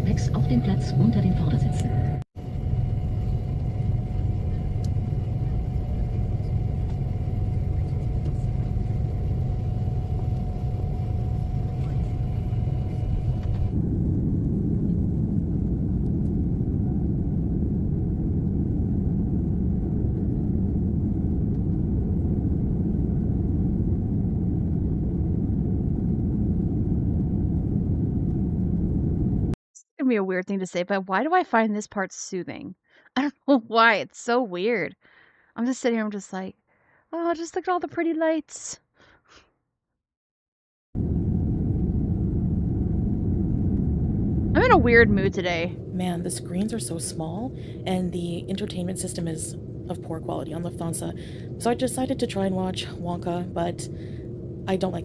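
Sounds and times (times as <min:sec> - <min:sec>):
airliner cabin engine rumble: 0:00.0 - 0:29.6, 0:41.0 - 0:55.0.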